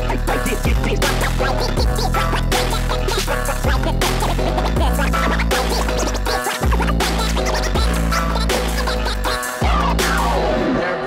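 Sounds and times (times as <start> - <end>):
beat: 0.0 - 10.8
vinyl scratching: 0.0 - 11.0.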